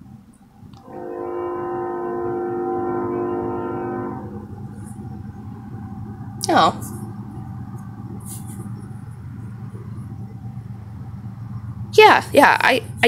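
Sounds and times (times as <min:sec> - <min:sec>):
low steady rumble: 0:00.0 - 0:13.0
train horn chord: 0:00.8 - 0:06.0.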